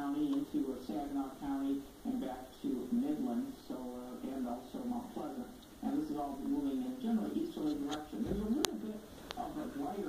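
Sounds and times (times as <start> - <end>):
muffled talking: 0.0 - 10.0.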